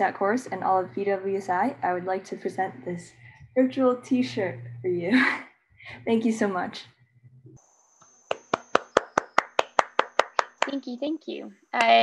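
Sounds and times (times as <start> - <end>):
person clapping hands: 8.3 - 10.8.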